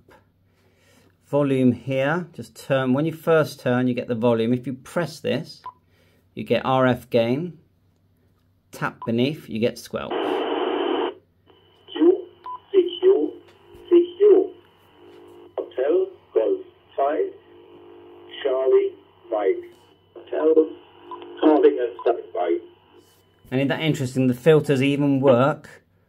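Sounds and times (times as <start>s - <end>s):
faint high whine: 10.1s - 25.5s
radio voice talking: 10.1s - 25.5s.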